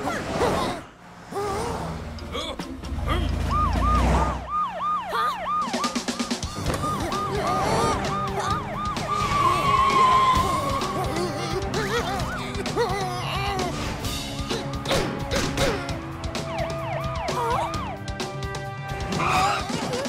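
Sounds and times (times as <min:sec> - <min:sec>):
siren-like whooping: 0:03.2 - 0:11.0, 0:16.4 - 0:18.0.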